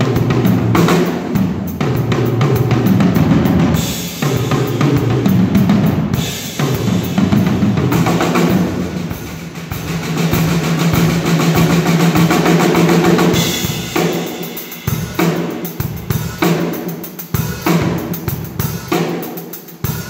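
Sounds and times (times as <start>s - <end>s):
drum kit playing: 0.0s - 20.0s.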